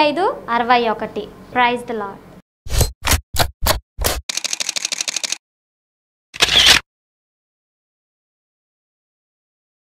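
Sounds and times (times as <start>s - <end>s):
camera shutter clicks: 4.3s - 5.4s, 6.4s - 6.8s.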